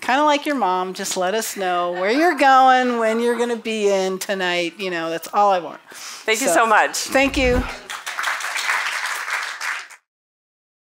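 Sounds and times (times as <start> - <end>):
audience applauding: 7.6 - 10.1.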